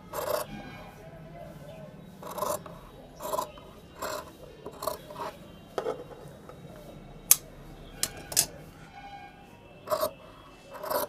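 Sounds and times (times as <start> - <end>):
scissors cutting cloth: 10.8 - 11.0.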